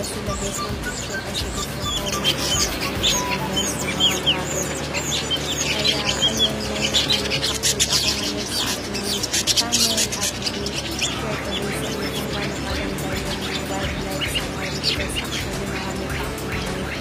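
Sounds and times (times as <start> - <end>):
background music: 0.0 - 17.0
birds chirping and chattering: 0.0 - 17.0.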